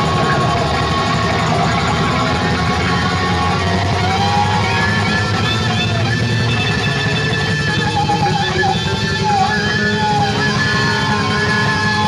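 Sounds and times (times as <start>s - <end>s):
live rock band playing loud: 0.0s - 12.0s.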